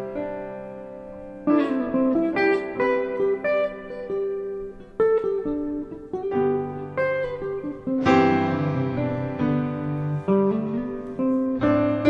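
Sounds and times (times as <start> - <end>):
slow ballad instrumental: 0.0 - 12.0.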